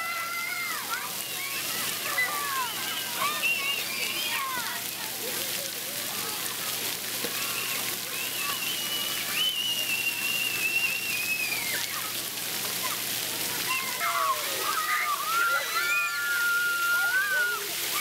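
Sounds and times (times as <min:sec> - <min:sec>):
children shouting and squealing: 0:00.0 - 0:18.0
water jets spraying: 0:00.0 - 0:18.0.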